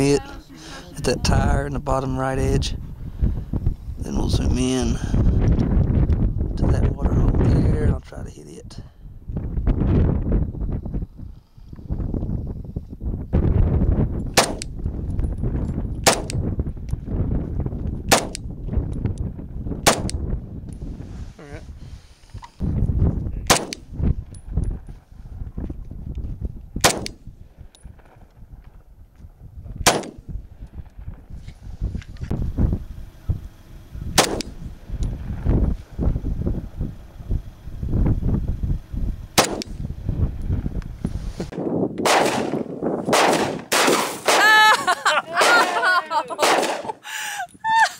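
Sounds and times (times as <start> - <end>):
wind rumbling on microphone: 0.0 - 44.0
shotgun shots with ringing tone: 14.4 - 14.6, 16.0 - 16.4, 18.1 - 18.4, 19.8 - 20.1, 23.5 - 23.9, 26.8 - 27.2, 29.8 - 30.2, 34.2 - 34.6, 39.4 - 39.8, 42.0 - 44.4, 46.4 - 46.9
pistol shots: 14.4 - 14.7, 16.0 - 16.4, 18.1 - 18.4, 19.8 - 20.2, 23.5 - 23.9, 26.8 - 27.2, 29.8 - 30.2, 34.2 - 34.6, 39.4 - 39.8, 42.0 - 44.4, 46.4 - 47.0.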